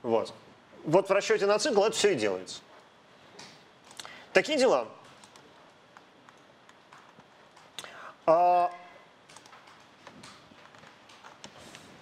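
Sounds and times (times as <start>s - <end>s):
keyboard keys clicking: 5.1s - 7.8s, 9.2s - 11.8s.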